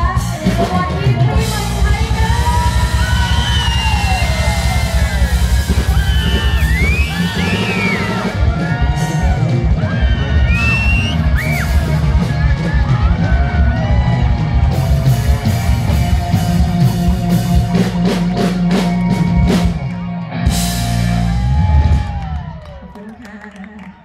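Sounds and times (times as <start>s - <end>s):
live band with drum beat: 0.0s - 23.2s.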